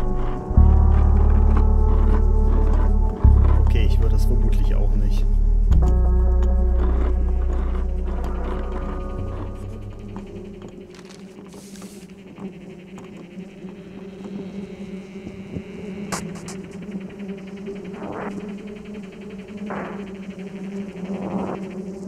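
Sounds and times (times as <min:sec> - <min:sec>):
low drone: 0:00.0 - 0:22.0
dissonant orchestral chord: 0:03.6 - 0:10.9.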